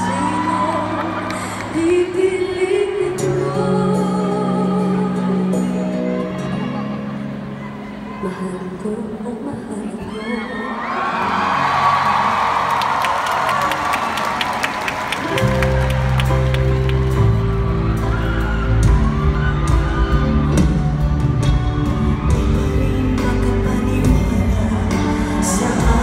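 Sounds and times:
crowd cheering and clapping: 0.0 - 2.7, 10.7 - 26.0.

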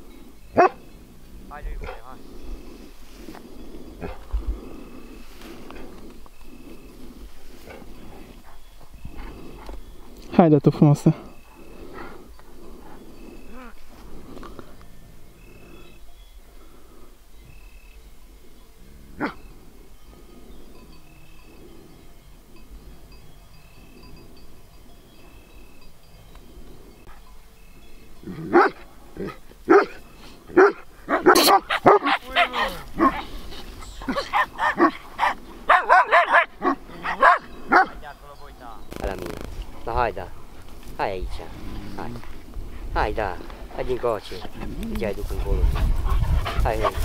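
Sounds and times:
dogs barking: 0.5 - 0.9, 19.2 - 19.4, 28.3 - 38.1.

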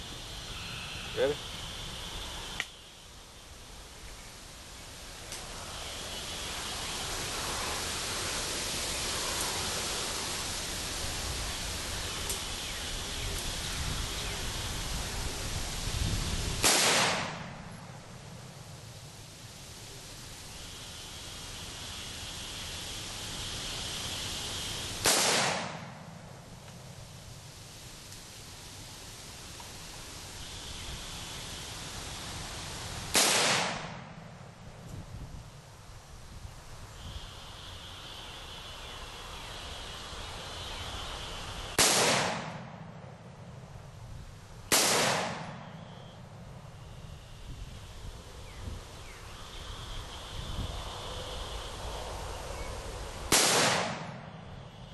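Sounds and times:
rifle shot with ringing tail: 16.6 - 17.6, 25.0 - 25.9, 33.2 - 34.1, 44.7 - 45.9, 53.3 - 54.3.

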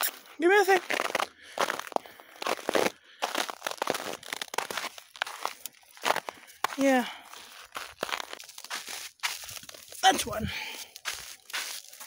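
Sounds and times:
footsteps crunching in snow: 0.0 - 12.0.

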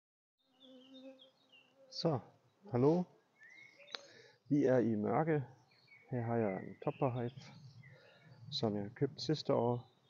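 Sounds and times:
honeybees buzzing: 0.5 - 2.2.

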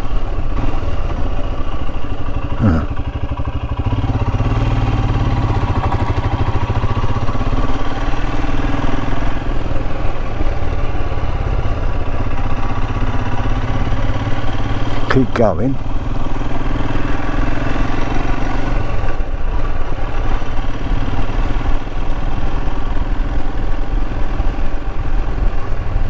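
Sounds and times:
motorcycle engine running: 0.0 - 26.0.

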